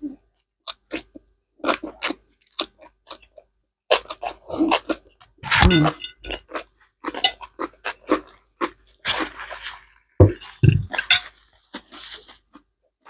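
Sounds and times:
people chewing noodles: 0.0 - 13.0
slurping noodles: 9.0 - 10.0.

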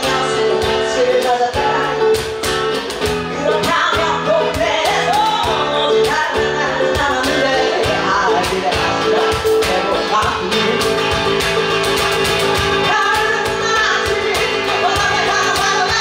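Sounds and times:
person singing: 0.0 - 2.4, 3.3 - 11.2, 12.8 - 16.0
cajon beat: 0.0 - 16.0
strummed acoustic guitar: 0.0 - 16.0.

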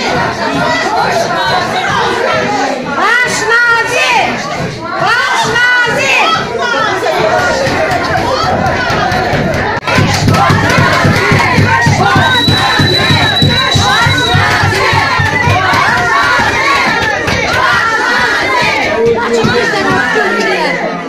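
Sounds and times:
crowd of protesters shouting: 0.0 - 21.0.

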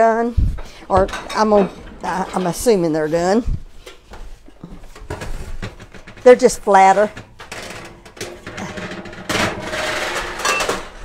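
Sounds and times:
clicks and knocks: 0.6 - 3.0, 3.8 - 11.0
metal bakeware clattering: 0.6 - 4.0, 5.1 - 11.0.

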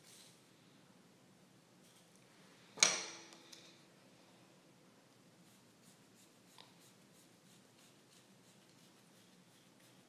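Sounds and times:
comb scratching through hair: 5.5 - 10.0.

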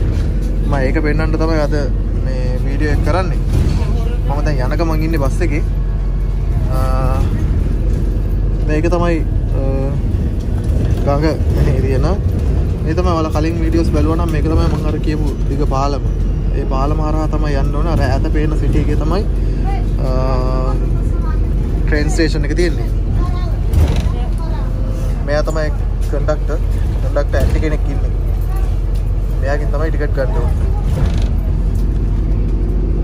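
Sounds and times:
bus engine rumble and road noise: 0.0 - 33.0.

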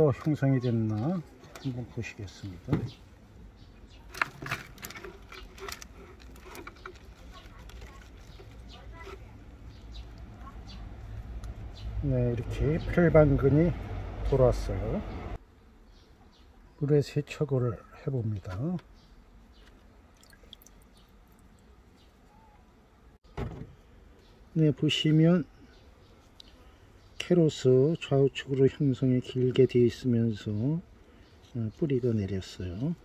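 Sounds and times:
plastic and soil crackling: 3.9 - 12.3
water drips and splashes: 20.1 - 21.5.

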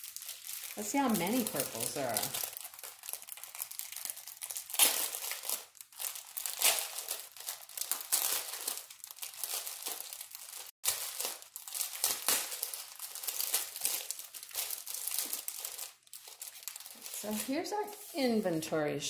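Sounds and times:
plastic bag crinkling: 0.0 - 18.3.

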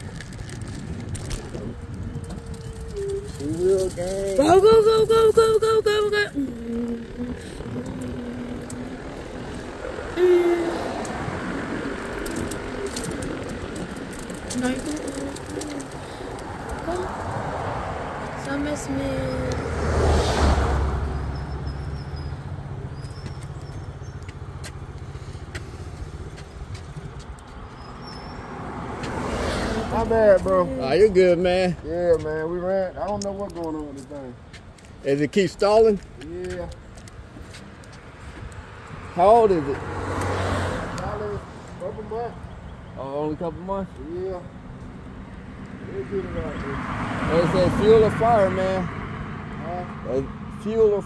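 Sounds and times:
heavier low rumble: 0.0 - 4.4
wind on microphone: 0.0 - 21.0
scooter tyre rumble on boardwalk: 0.0 - 50.4.

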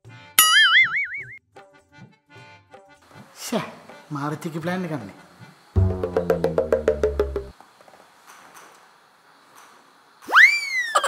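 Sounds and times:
light background music: 1.6 - 7.5
cartoon boing twang: 5.8 - 7.5.

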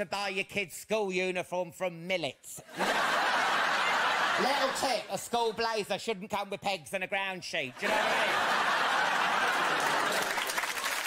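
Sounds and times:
audience laughing: 2.7 - 5.6, 7.8 - 10.8
audience clapping: 7.8 - 11.0.

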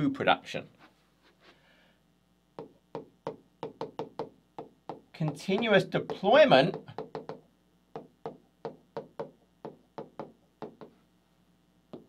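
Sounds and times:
stylus tapping on touchscreen: 2.6 - 11.0.

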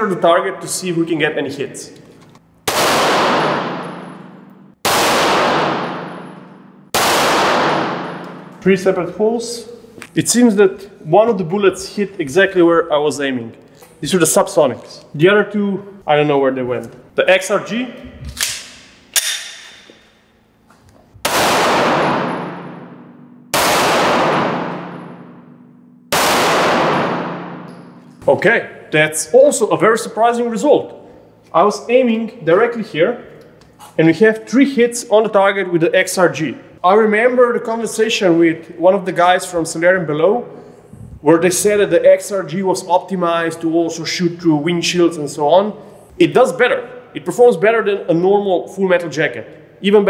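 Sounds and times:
pistol shots with echo: 2.6 - 8.6, 21.2 - 28.0.

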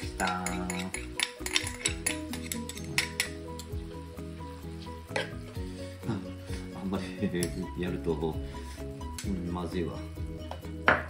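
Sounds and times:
bowl and spoon clinking on pan: 0.0 - 3.8.

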